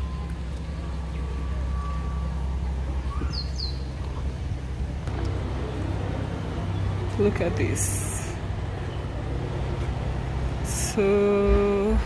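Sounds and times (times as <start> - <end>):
low outdoor rumble: 0.0 - 12.0
bird chirps: 3.0 - 4.0.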